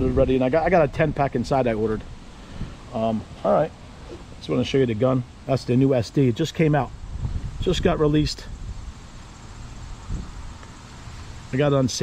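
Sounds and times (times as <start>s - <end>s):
steady low rumble: 0.0s - 12.0s
faint insect chirping: 1.2s - 12.0s.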